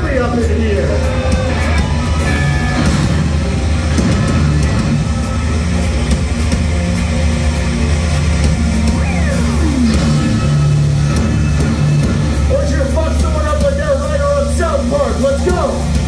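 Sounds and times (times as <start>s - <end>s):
heavy rock band playing live: 0.0s - 16.0s
sliding note falling in pitch: 8.6s - 11.6s.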